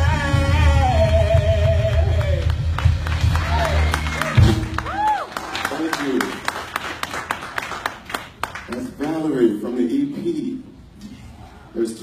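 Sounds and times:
scattered clapping: 0:01.6 - 0:09.2.

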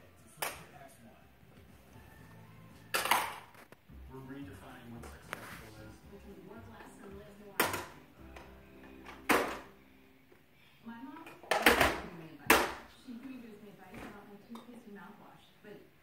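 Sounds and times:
voices: 0:04.0 - 0:08.5.

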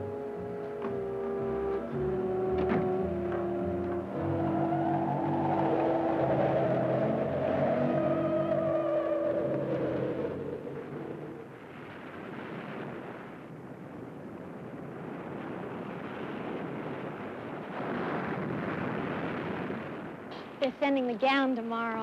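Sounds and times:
film score held notes: 0:00.0 - 0:15.8
ocean surf breaking on beach: 0:03.0 - 0:22.0.

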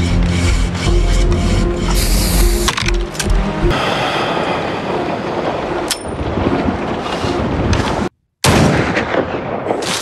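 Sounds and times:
loud rushing noise: 0:03.7 - 0:05.8.

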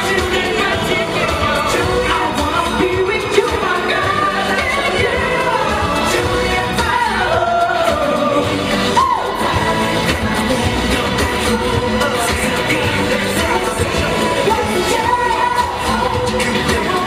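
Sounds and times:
man singing into microphone: 0:00.0 - 0:17.0
pop backing track: 0:00.0 - 0:17.0.

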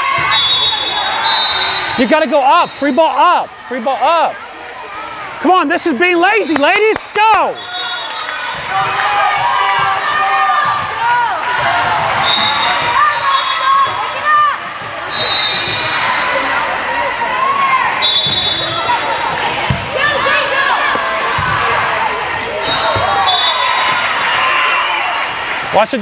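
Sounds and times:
hubbub of voices calling out: 0:00.0 - 0:26.0
volleyball thuds: 0:19.3 - 0:20.2.

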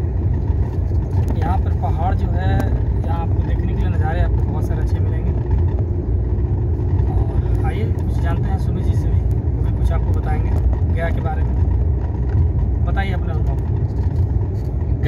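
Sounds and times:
car engine and tyres rumbling: 0:00.0 - 0:15.0.

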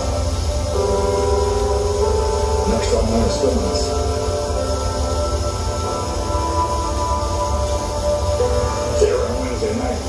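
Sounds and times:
electronic drone tones: 0:00.0 - 0:10.0
harsh noise low rumble: 0:00.0 - 0:10.0.

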